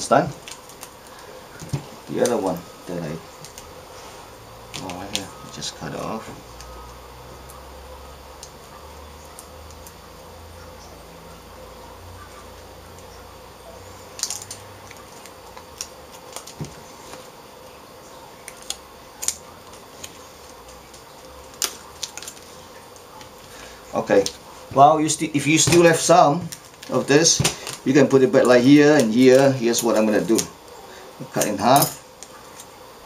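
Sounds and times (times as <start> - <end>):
foil tape crackling: 0.0 - 10.4, 12.2 - 32.8
low steady hum: 0.0 - 33.0.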